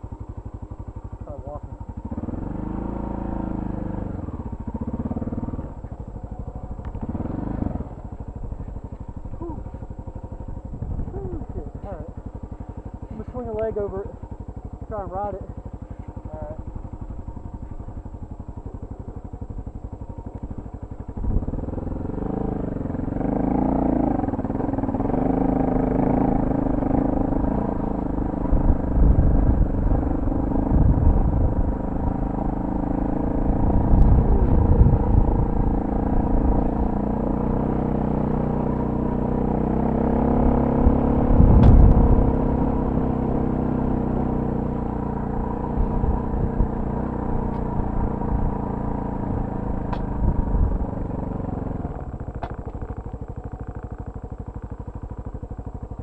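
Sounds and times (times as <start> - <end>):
motorcycle engine revving: 0.0 - 56.0
low thumps: 41.3 - 42.3.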